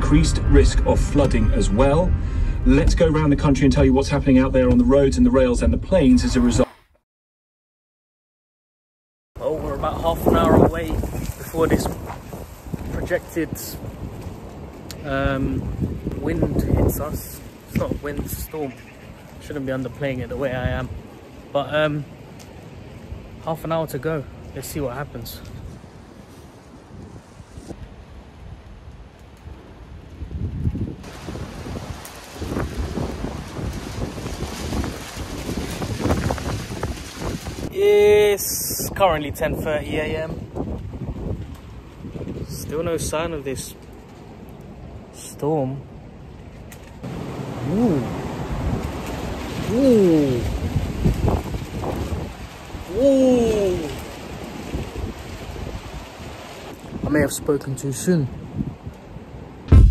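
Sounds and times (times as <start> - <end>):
wind buffeting microphone: 0.0 - 6.6, 9.6 - 18.4, 25.1 - 45.1, 46.3 - 57.4, 58.3 - 59.9.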